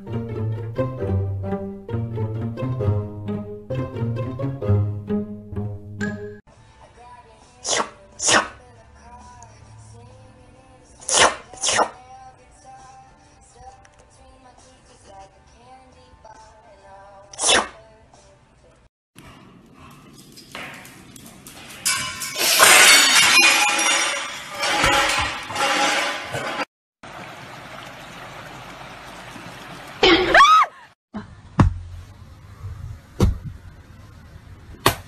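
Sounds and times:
faint background music: 0:06.5 - 0:18.9
cat sneezing: 0:07.6 - 0:08.6, 0:11.1 - 0:12.0.

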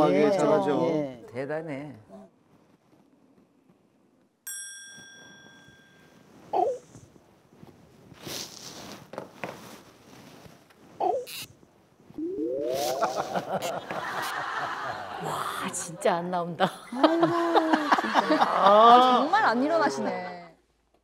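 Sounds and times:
bright chime: 0:04.5 - 0:06.2
bedding rustling: 0:05.2 - 0:12.2.

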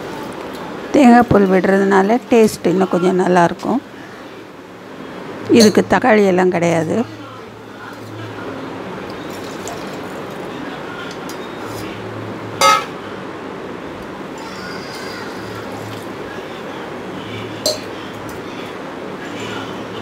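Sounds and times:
liquid pouring into a pot: 0:09.1 - 0:10.4.

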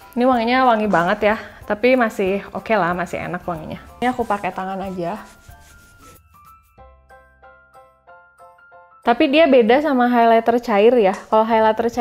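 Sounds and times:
background music with repeating notes: 0:00.0 - 0:12.0
fingertips rubbing skin: 0:03.5 - 0:06.5.

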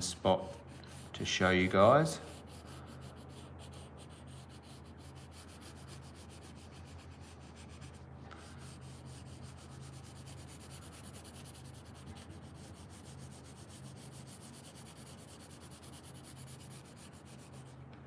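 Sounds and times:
pencil scratching on paper: 0:00.6 - 0:17.7.

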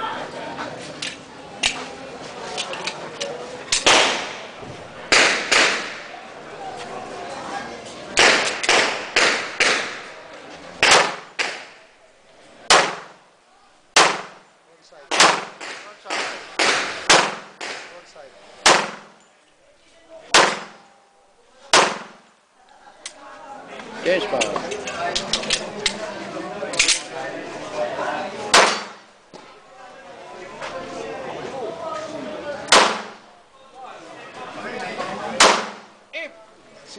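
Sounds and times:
voices: 0:00.0 - 0:36.9
pistol shots with echo: 0:03.7 - 0:04.5, 0:05.1 - 0:06.1, 0:08.2 - 0:10.1, 0:10.8 - 0:11.8, 0:12.7 - 0:13.2, 0:14.0 - 0:14.4, 0:15.1 - 0:18.0, 0:18.6 - 0:19.2, 0:20.3 - 0:20.8, 0:21.7 - 0:22.2, 0:28.5 - 0:29.0, 0:32.7 - 0:33.2, 0:35.4 - 0:35.9.

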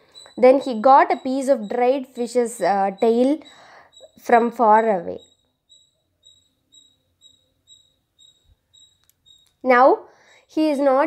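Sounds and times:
faint high-pitched chirp: 0:00.0 - 0:11.0.

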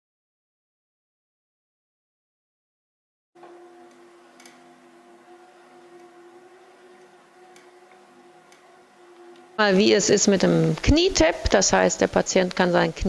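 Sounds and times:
steady hum: 0:03.4 - 0:13.0.

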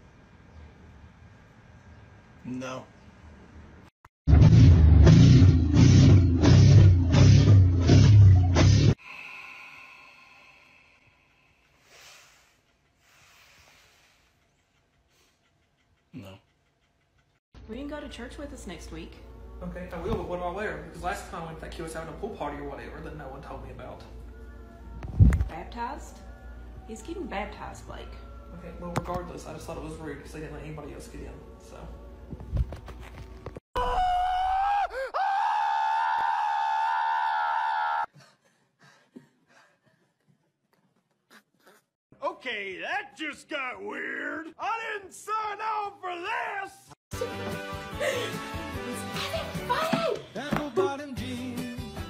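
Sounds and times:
person screaming high-pitched: 0:33.8 - 0:38.1.

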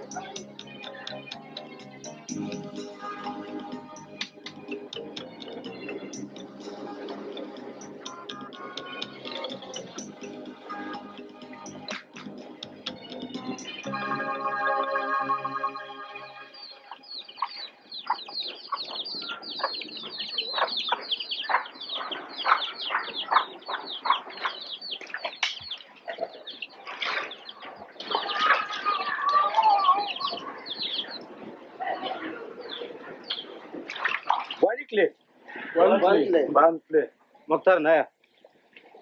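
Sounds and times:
birds chirping: 0:00.0 - 0:36.3.

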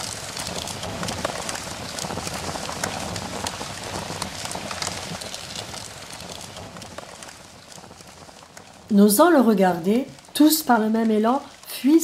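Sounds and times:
fire crackling: 0:00.0 - 0:12.0.

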